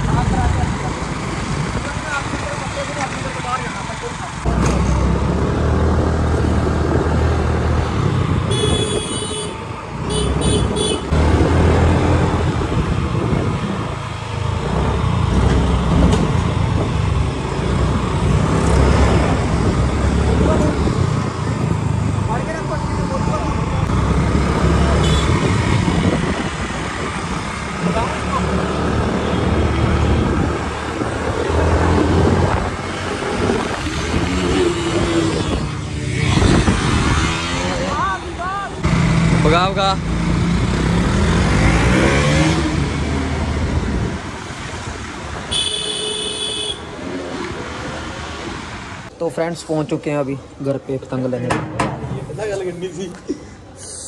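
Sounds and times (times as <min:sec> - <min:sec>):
motorcycle engines: 0:00.0 - 0:54.0.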